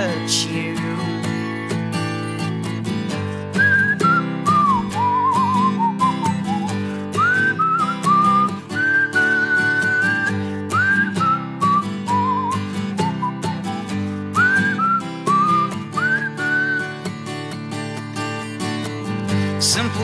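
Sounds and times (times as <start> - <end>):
strummed acoustic guitar: 0.0 - 20.0
whistled melody: 3.5 - 20.0.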